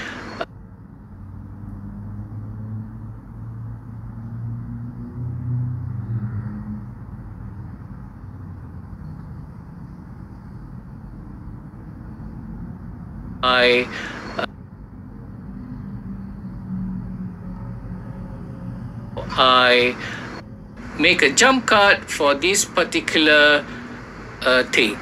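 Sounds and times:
low droning hum: 5.9s - 25.0s.

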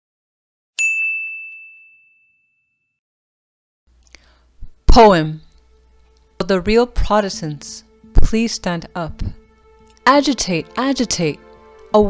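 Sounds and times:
high clear bell chime: 0.8s - 3.0s.

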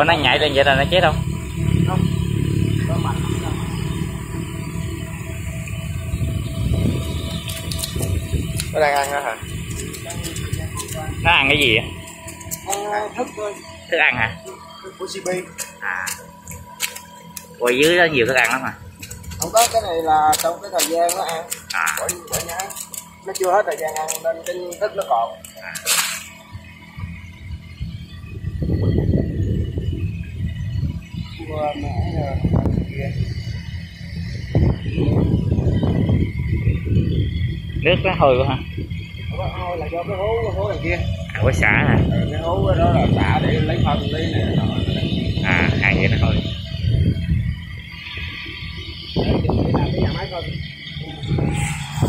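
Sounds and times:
pond aerator low rumble: 0.0s - 52.0s
steady low hum: 0.0s - 52.0s
paddlewheel aerators churning water: 7.4s - 26.4s.

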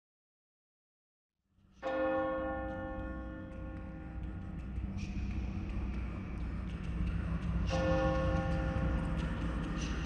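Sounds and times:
large church bell ringing: 1.8s - 4.3s.

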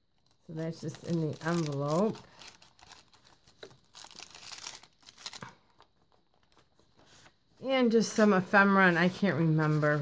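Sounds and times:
paper rustling and crinkling: 0.1s - 7.6s.

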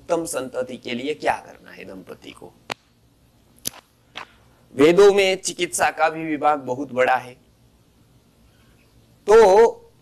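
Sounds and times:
man speaking: 0.0s - 2.6s, 4.7s - 7.4s, 9.2s - 9.9s
sharp click: 3.6s - 4.3s.

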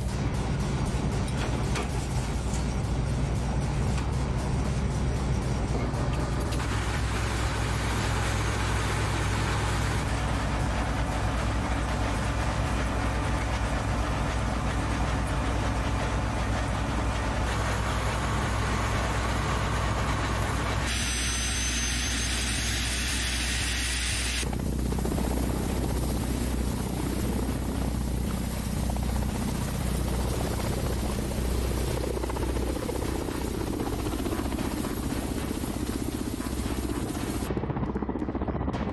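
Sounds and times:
high whine: 0.0s - 37.9s
helicopter engine and rotor throb: 0.0s - 38.9s.

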